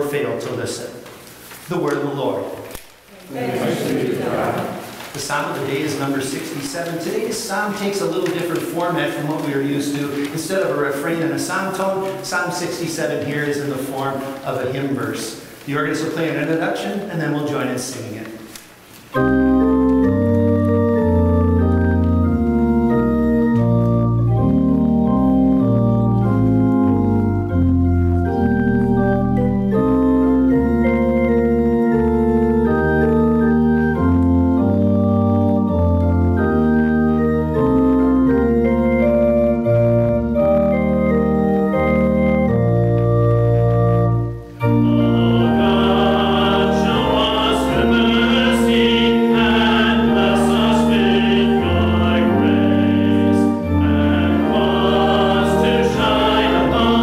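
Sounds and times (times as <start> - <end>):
congregation singing a hymn: 3.2 - 16.6, 44.6 - 57.0
church organ playing chords: 19.1 - 57.0.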